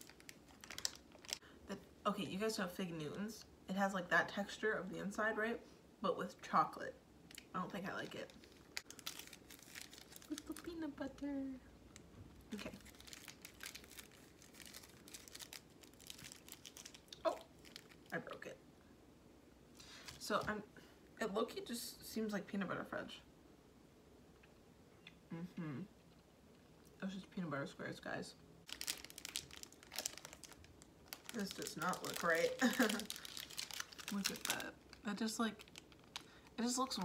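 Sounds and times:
candy wrapper crinkling: 0.0 - 1.4, 7.3 - 18.3, 28.7 - 37.0.

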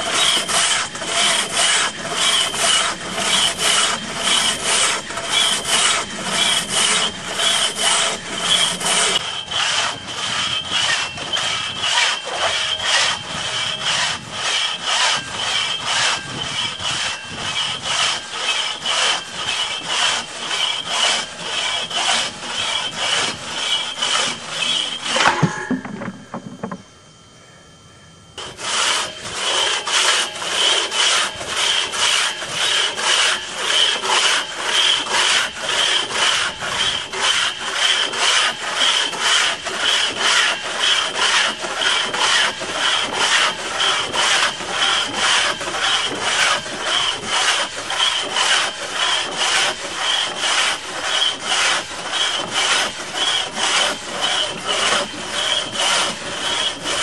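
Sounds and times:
crosscut saw cutting a log: 0.0 - 25.5, 28.4 - 57.0.

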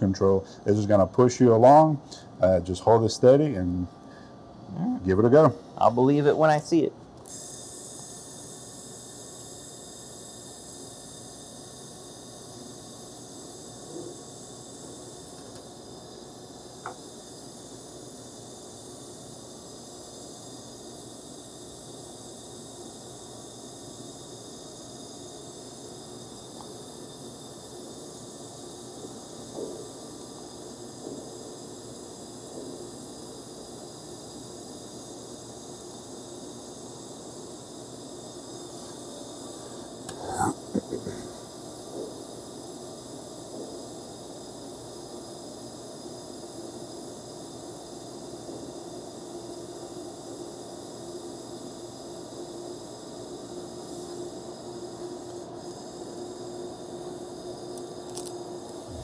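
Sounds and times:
laser welder hissing: 0.0 - 59.0.

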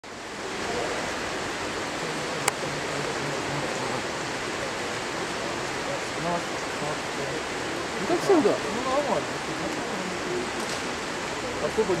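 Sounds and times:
rain falling steadily: 0.0 - 12.0.

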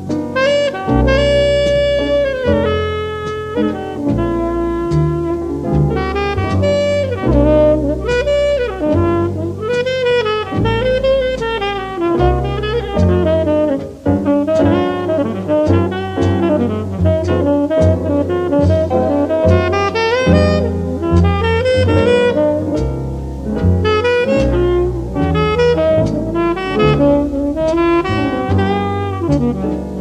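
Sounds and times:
double bass: 0.0 - 30.0
jazz rhythm section: 0.0 - 30.0
tenor saxophone melody: 0.2 - 30.0.

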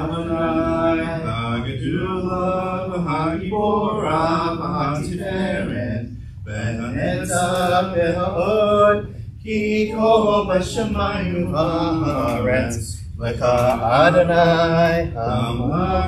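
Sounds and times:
liturgical chanting: 0.0 - 16.0.

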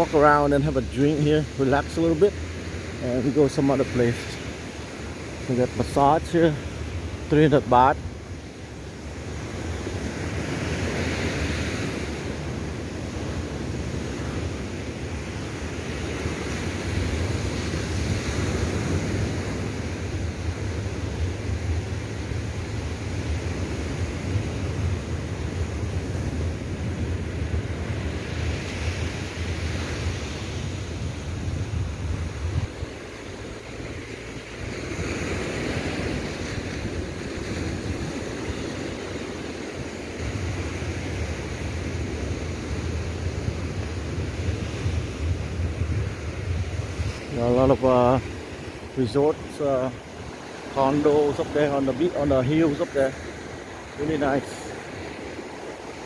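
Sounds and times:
surf breaking on sandy beach: 0.0 - 56.0
wind rumbling on microphone: 0.0 - 56.0.

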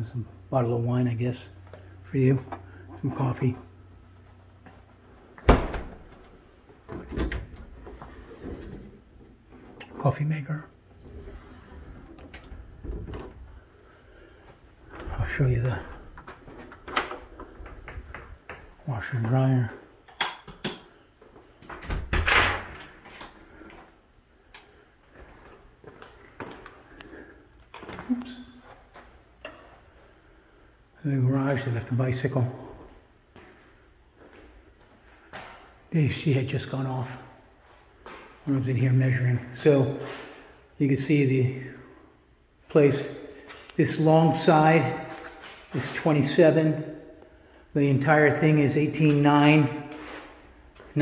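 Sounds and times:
door opening: 5.4 - 10.0, 11.0 - 13.6, 14.9 - 18.8, 21.6 - 23.4.

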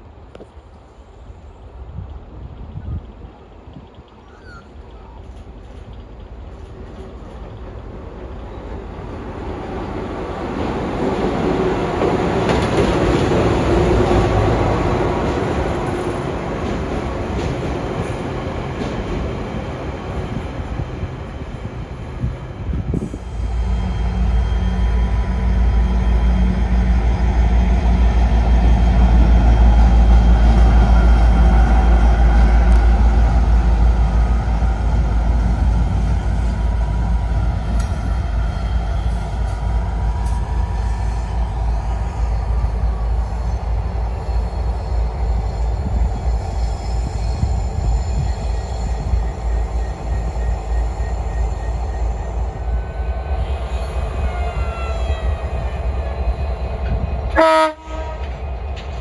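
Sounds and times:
train wagons rolling on rails: 0.0 - 59.0.

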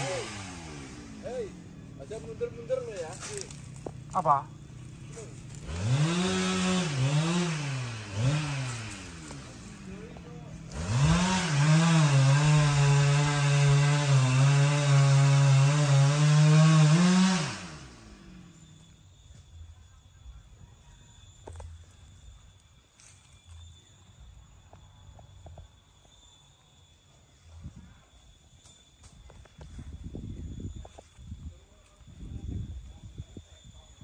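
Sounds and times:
chainsaw revving: 0.0 - 18.8.

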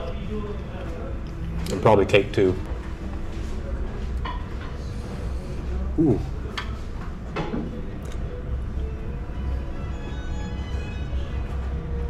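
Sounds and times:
low hum of dining room: 0.0 - 12.0.

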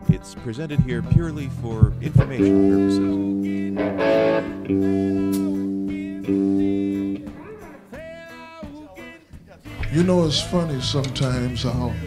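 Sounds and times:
guitar single notes bending: 0.0 - 8.1
guitar chords ringing: 0.0 - 8.4.

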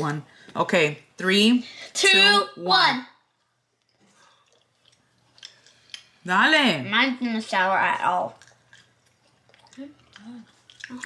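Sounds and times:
gum chewing mouth sounds: 3.8 - 6.2, 8.2 - 11.0.

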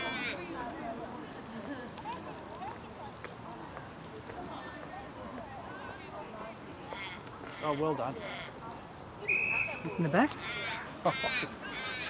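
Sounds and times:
crow cawing: 10.4 - 12.0.

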